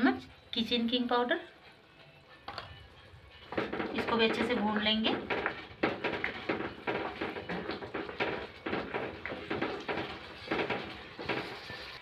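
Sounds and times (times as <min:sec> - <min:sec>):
frying hiss: 0:00.8 - 0:12.0
spatula scraping and tapping pan: 0:03.4 - 0:12.0.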